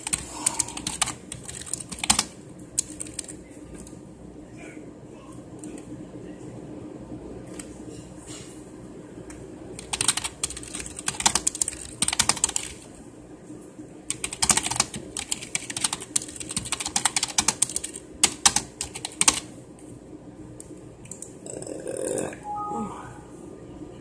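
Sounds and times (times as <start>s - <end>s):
fast typing on a keyboard: 0.0s - 3.4s, 9.8s - 12.8s, 14.1s - 19.5s.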